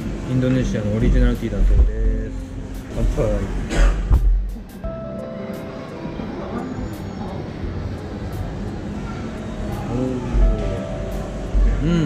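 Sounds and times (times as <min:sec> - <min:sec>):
background music: 0:00.0 - 0:12.0
faint voices: 0:00.0 - 0:12.0.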